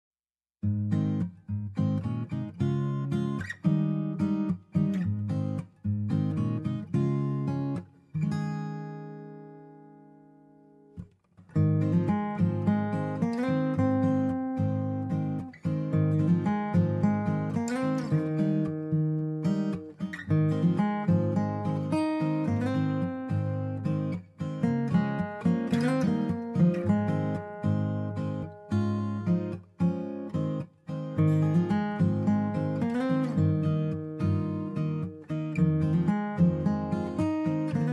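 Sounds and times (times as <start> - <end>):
strummed acoustic guitar: 0.6 - 37.9.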